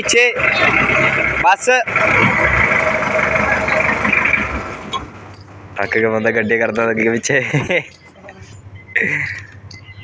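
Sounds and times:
jeep engine droning: 0:00.0 - 0:10.0.

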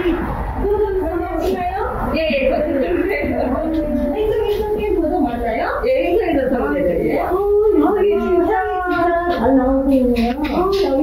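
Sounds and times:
women talking: 0:00.0 - 0:11.0.

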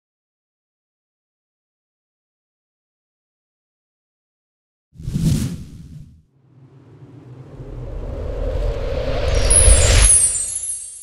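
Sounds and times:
low rumbling whoosh: 0:05.0 - 0:10.6
high shimmer: 0:07.2 - 0:11.0.

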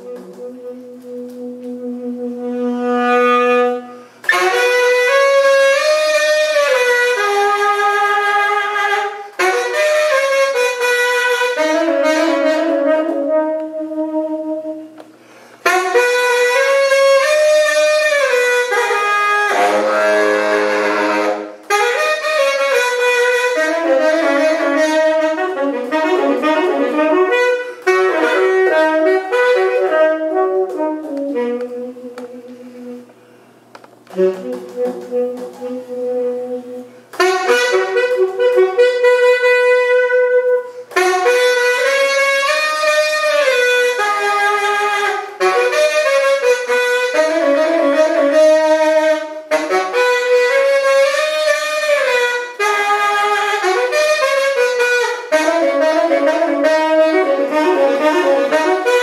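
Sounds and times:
tenor saxophone playing free jazz: 0:00.0 - 0:59.0.

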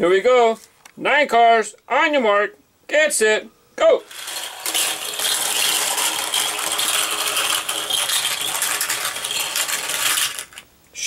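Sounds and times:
toy cars rattling down plastic track: 0:04.0 - 0:10.7.

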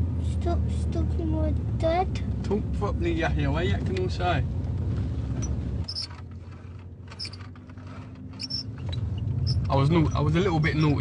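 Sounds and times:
road rumble inside car: 0:00.0 - 0:11.0.

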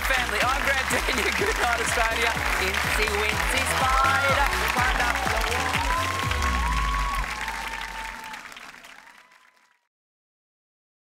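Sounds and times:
game show music with beat: 0:00.0 - 0:08.3
audience applauding and cheering: 0:00.0 - 0:09.9.

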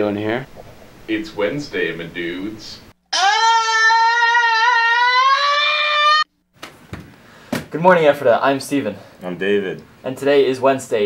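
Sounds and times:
young man screaming: 0:03.1 - 0:06.3.

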